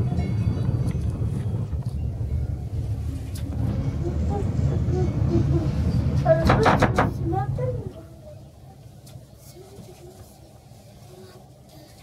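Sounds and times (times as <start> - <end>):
wind noise: 0.0 - 7.8
low cabin rumble: 0.0 - 11.6.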